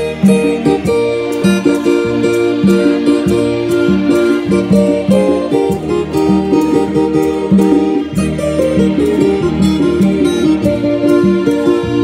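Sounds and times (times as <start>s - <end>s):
bass line: 0.0s - 12.0s
church band music with keyboard: 0.0s - 12.0s
steady percussion: 0.0s - 12.0s.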